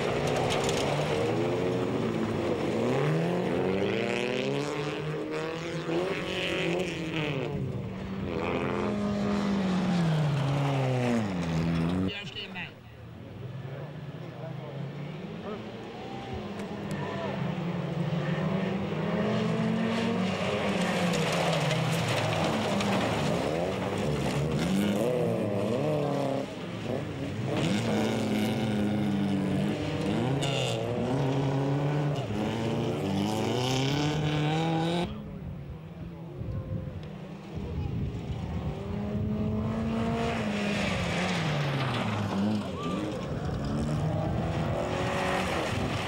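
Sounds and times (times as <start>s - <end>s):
racing car engines revving: 0.0s - 46.0s.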